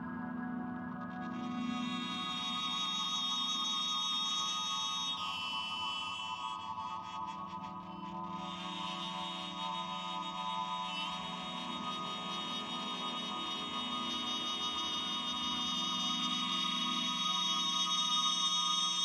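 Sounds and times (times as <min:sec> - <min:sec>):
sustained electric guitar drones: 0:00.0 - 0:19.0.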